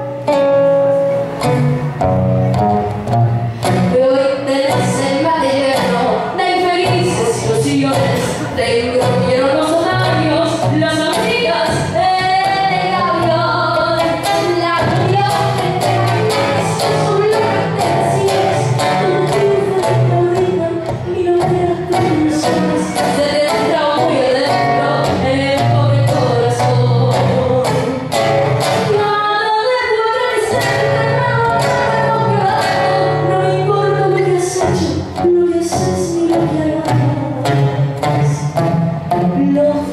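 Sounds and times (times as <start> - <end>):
nylon-string acoustic guitar: 0.0 - 39.9
woman singing: 3.6 - 39.9.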